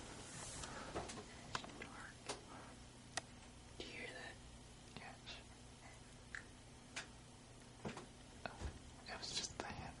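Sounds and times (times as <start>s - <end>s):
low steady hum: 0.0s - 10.0s
faint whispered voice: 1.7s - 2.4s, 3.8s - 6.0s, 8.4s - 10.0s.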